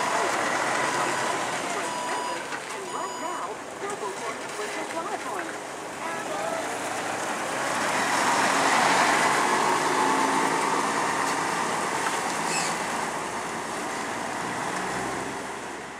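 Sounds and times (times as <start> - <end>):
garbage truck driving past: 0.0 - 15.9.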